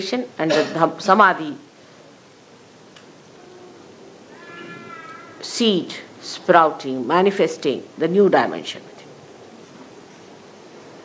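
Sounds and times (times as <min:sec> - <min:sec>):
faint high-pitched cry: 0:03.4 - 0:05.5.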